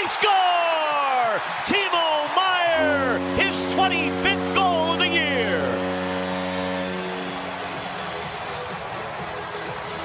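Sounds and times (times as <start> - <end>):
crowd noise: 0.0 - 10.0
sustained music chord: 2.8 - 8.3.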